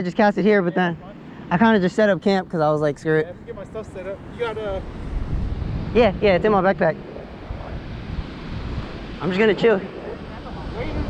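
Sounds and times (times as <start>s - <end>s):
wind rumbling on microphone: 3.0s - 11.0s
ocean surf breaking: 3.3s - 11.0s.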